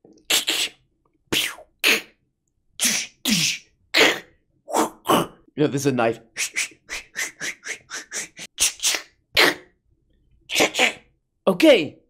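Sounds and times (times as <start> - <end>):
man making hissing mouth sounds: 0.1 - 2.2, 2.8 - 5.3, 6.3 - 9.8, 10.5 - 11.0.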